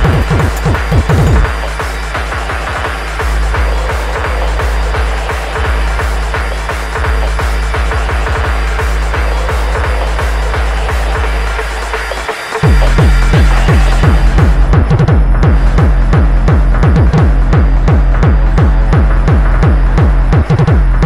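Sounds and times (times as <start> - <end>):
electronic dance music: 0.0 - 21.0.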